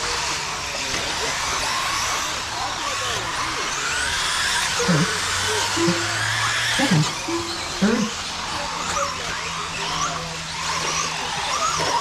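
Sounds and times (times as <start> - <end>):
toy car motors whining: 0.0 - 12.0.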